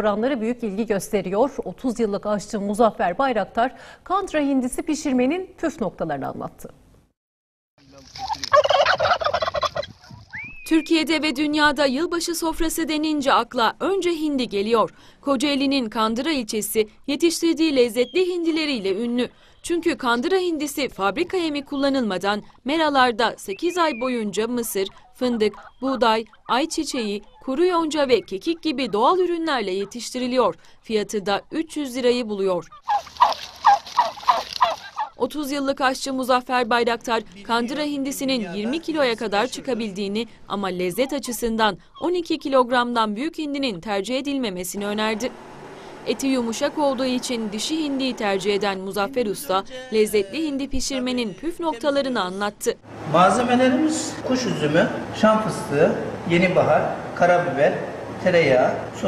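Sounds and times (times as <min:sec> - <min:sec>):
turkeys gobbling: 0:08.0 - 0:10.6, 0:23.5 - 0:30.3, 0:32.7 - 0:35.2.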